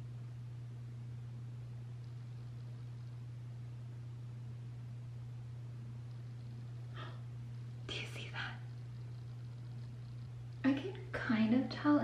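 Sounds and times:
steady low hum: 0.0 - 12.0
woman whispering: 7.8 - 8.8.

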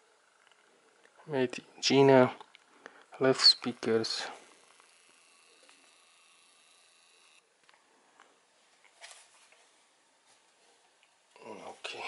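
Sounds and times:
soft rustle: 7.6 - 12.0.

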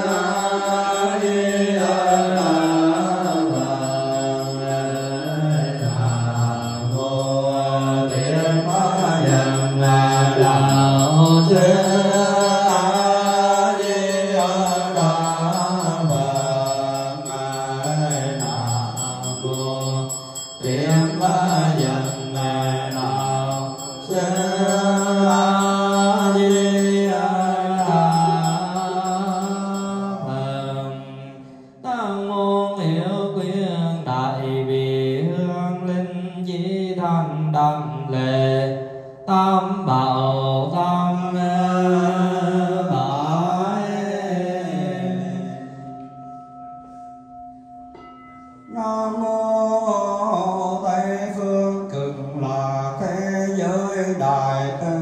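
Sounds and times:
person chanting: 0.0 - 46.2, 48.7 - 55.0.

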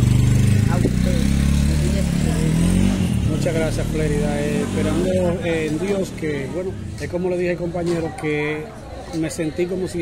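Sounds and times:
engine running: 0.0 - 6.1.

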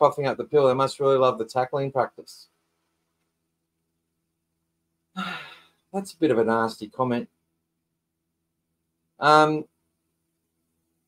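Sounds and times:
man sighing: 5.2 - 5.8.

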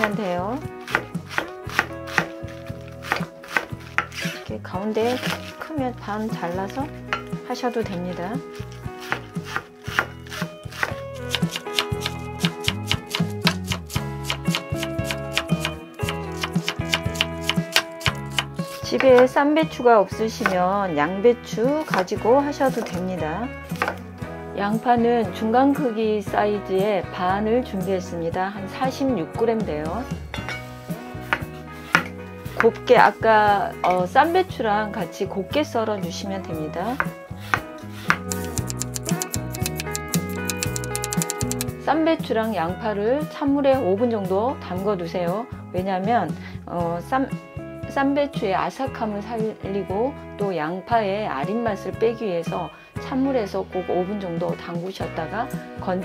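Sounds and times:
background music: 0.0 - 56.0
knife striking cutting board: 0.9 - 4.4, 5.1 - 5.5, 9.0 - 19.2, 23.8 - 24.0, 30.3 - 32.7, 37.0 - 41.7.

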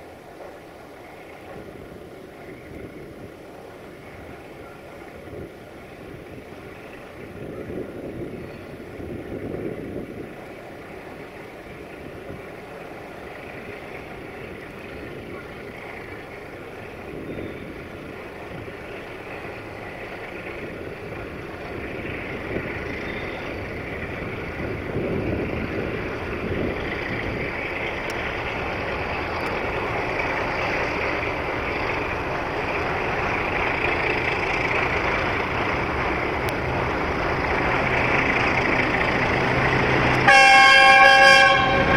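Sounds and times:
locomotive diesel engine running: 0.0 - 41.9.

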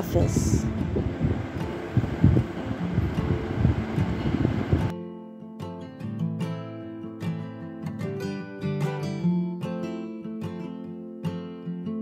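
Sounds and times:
wind buffeting microphone: 0.0 - 4.9.

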